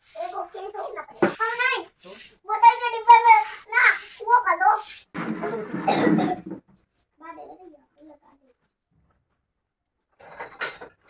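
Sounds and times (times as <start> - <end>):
person coughing: 5.8 - 6.6.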